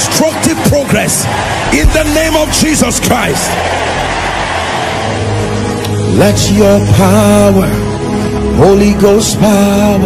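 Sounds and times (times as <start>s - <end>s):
congregation roaring response: 0.0s - 8.1s.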